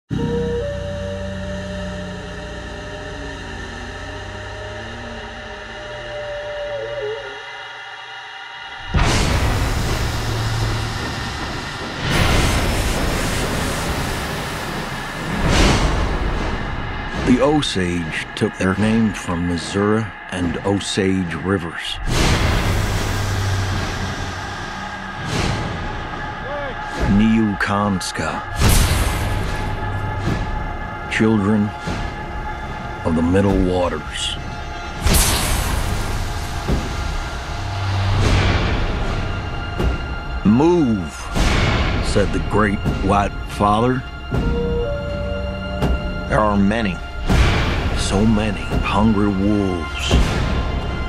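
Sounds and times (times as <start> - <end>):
low hum: 0.1 - 51.0
steam train rumbling: 0.1 - 51.0
hiss: 8.7 - 17.2, 22.1 - 27.1, 35.0 - 38.8.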